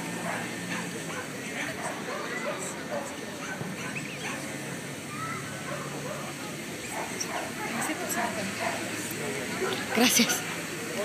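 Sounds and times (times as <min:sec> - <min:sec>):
dogs barking: 0:00.0 - 0:04.6, 0:05.6 - 0:09.0
murmur of crowd chatter: 0:00.0 - 0:11.0.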